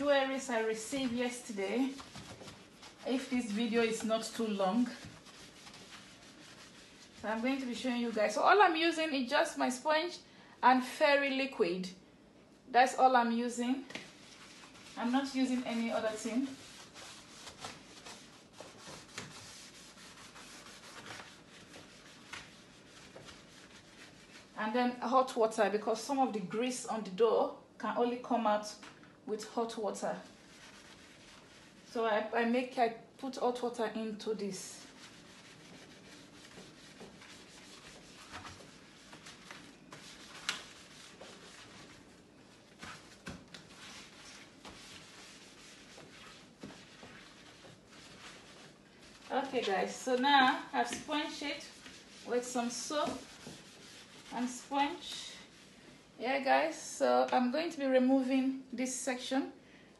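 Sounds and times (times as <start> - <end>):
sponge scrubbing plastic: 0.0 - 8.4, 13.9 - 25.4, 29.5 - 32.0, 33.6 - 56.0.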